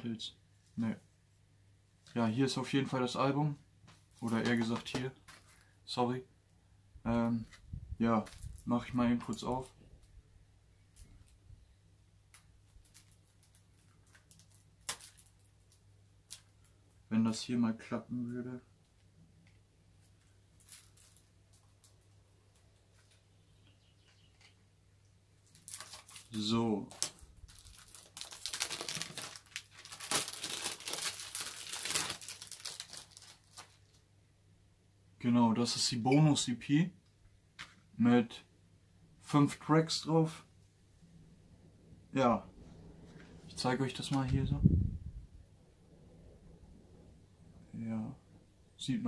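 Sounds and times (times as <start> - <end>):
low steady hum: 0.0 - 49.0
plastic wrap crinkling: 12.3 - 16.8, 20.0 - 23.2, 25.4 - 34.1
blade scratching plastic wrap: 26.9 - 33.8.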